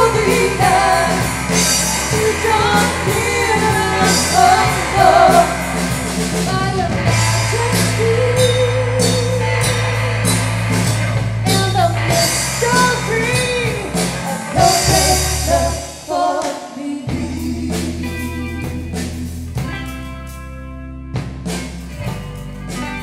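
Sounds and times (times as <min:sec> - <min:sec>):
person singing: 0:00.0 - 0:09.8, 0:11.5 - 0:19.0
bass: 0:00.0 - 0:23.0
drums: 0:00.0 - 0:23.0.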